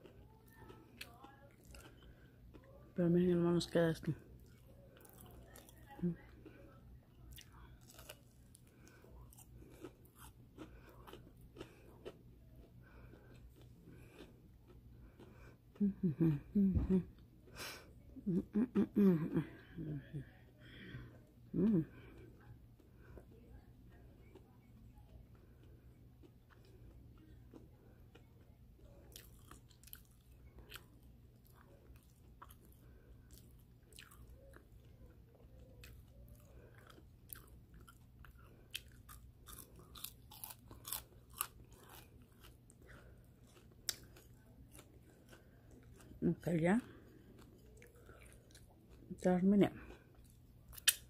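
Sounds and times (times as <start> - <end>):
chewing crunchy food: 0.0 - 16.5, 21.0 - 51.0
low steady hum: 0.0 - 51.0.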